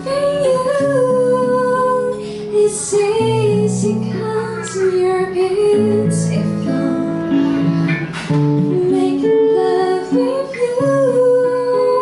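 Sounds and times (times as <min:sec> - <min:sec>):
woman singing into a microphone: 0:00.0 - 0:12.0
plucked acoustic strings: 0:05.0 - 0:12.0.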